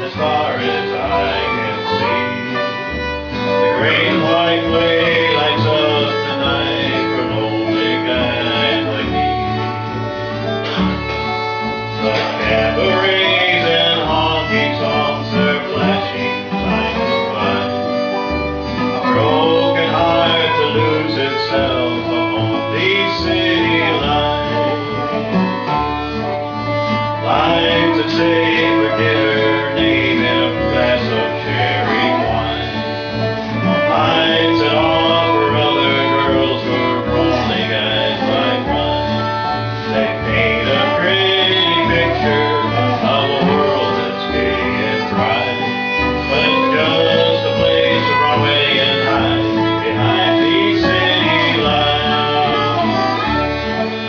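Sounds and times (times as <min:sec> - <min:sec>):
acoustic guitar strumming: 0:00.0 - 0:54.0
dobro: 0:00.0 - 0:54.0
fiddle: 0:00.0 - 0:54.0
upright bass: 0:00.0 - 0:54.0.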